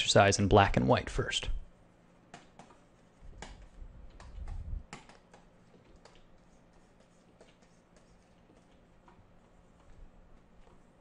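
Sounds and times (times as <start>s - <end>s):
computer keys clicking: 3.4s - 6.3s.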